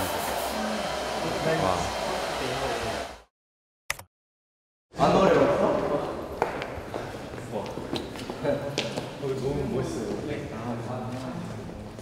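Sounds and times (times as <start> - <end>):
blower rushing: 0.0 - 3.3.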